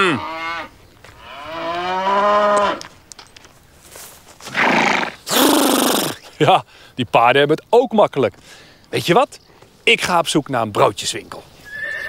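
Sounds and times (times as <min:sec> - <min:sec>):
cow mooing: 0:00.0 - 0:02.8.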